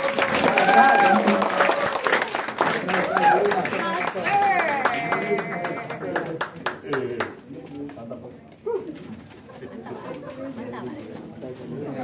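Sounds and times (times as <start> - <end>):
people talking and murmuring: 0.0 - 12.0.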